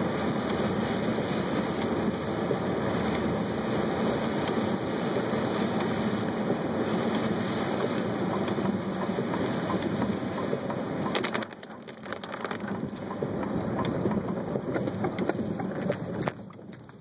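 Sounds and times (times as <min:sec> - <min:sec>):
heavy rain on a car: 0:00.0 - 0:17.0.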